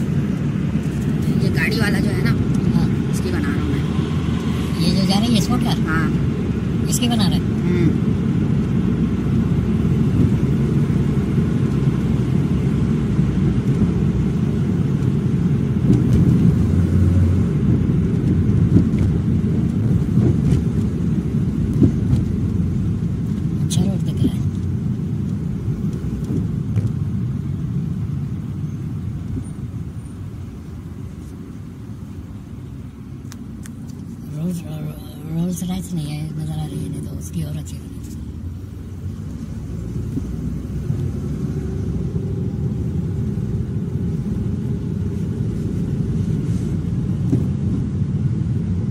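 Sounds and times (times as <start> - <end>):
car cabin road and engine rumble: 0.0 - 48.9.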